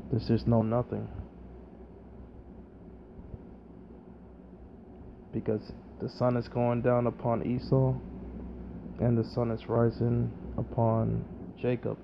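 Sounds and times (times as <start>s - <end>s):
low background hum and hiss: 0.0s - 12.0s.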